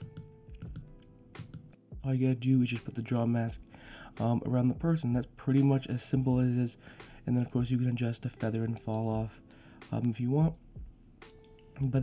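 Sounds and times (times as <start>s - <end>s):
computer keys clicking: 0.0s - 1.7s
faint background music: 0.0s - 12.0s.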